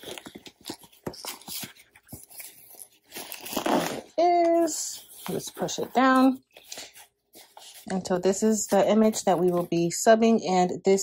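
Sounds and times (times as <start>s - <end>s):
tape and paper crinkling: 0.0s - 9.8s.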